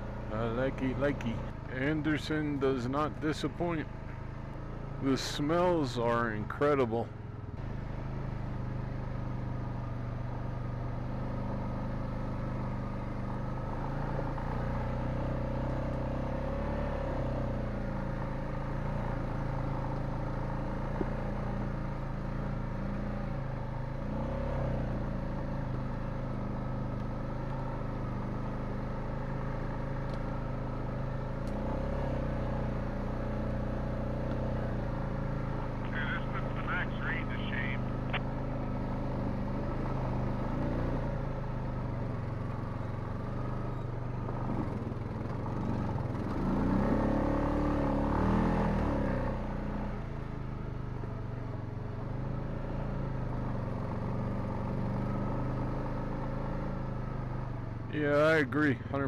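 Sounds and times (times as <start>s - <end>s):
quad bike engine running: 0.0s - 59.0s.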